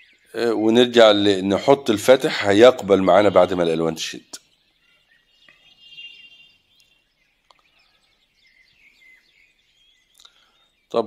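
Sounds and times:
bird chirps: 0.0s - 11.0s.

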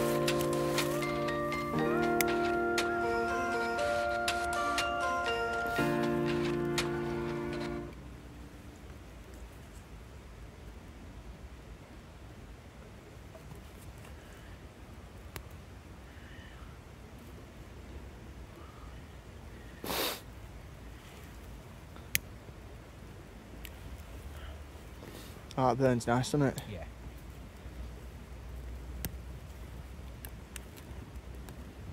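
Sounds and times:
background music: 0.0s - 8.0s
small fire crackling: 0.0s - 10.9s, 13.5s - 15.8s, 19.8s - 31.9s.

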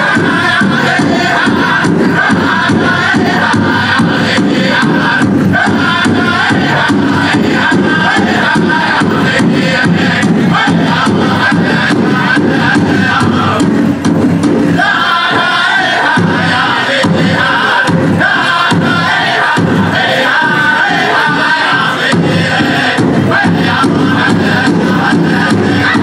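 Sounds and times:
big drum beats: 0.0s - 26.0s
group singing in chorus: 0.0s - 26.0s.

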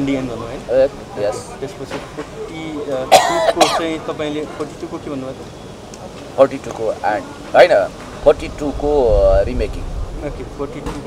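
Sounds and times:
person clearing throat: 3.1s - 3.9s.

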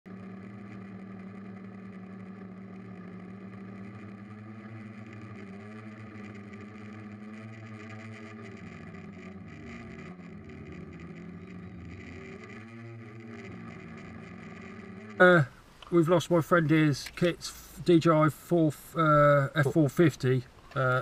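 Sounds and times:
quadcopter motors humming: 0.0s - 17.8s.

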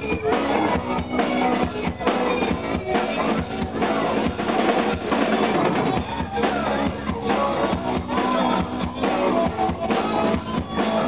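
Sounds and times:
electric guitar: 0.0s - 11.0s
fast snare and bass drum hits: 0.0s - 11.0s
rock band playing live: 0.0s - 11.0s.

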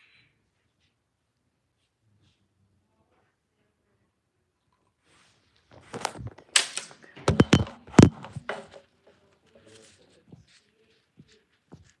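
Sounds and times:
phone handling knocks and scrapes: 5.8s - 6.5s, 7.3s - 8.8s.

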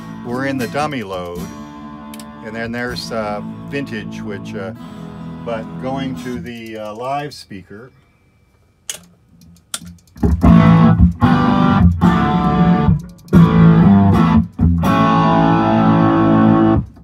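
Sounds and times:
distorted electric guitar chords: 0.0s - 6.5s, 10.2s - 17.0s.

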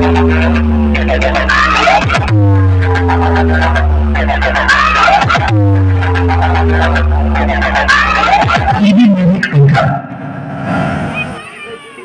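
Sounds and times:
heavy bass drone: 0.0s - 11.2s.

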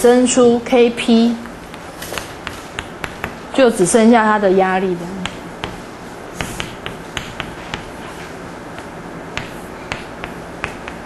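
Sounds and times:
chalk ticking on blackboard: 6.4s - 8.0s, 8.8s - 11.0s.

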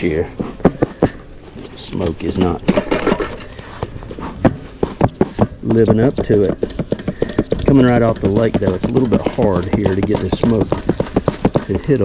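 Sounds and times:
bellows smoker puffs: 3.3s - 5.9s.

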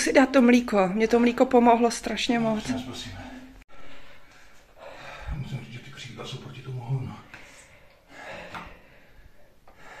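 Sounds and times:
person breathing heavily: 3.3s - 5.4s, 7.3s - 10.0s.

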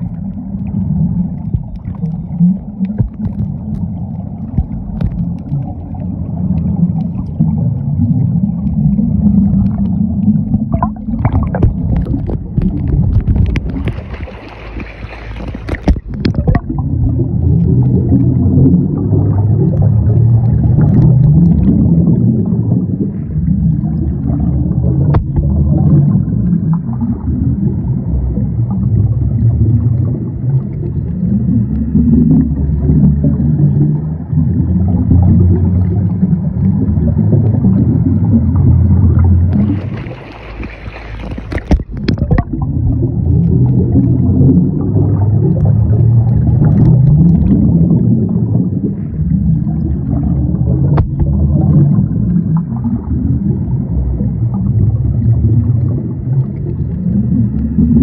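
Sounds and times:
muffled underwater rumbling: 0.0s - 58.0s
scuba regulator bubbling: 0.0s - 58.0s
water splash and hiss: 10.8s - 16.7s, 39.5s - 42.5s.

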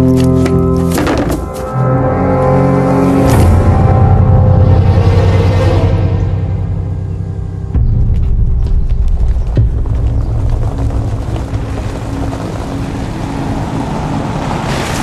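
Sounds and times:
suv engine and tyres rumbling: 4.0s - 15.0s.

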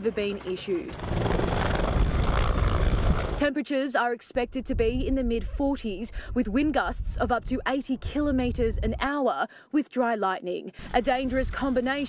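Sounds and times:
helicopter rotor chop and engine: 0.2s - 3.4s.

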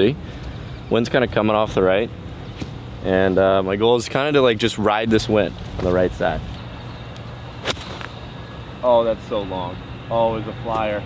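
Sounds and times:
golf club striking ball: 7.6s - 8.2s.

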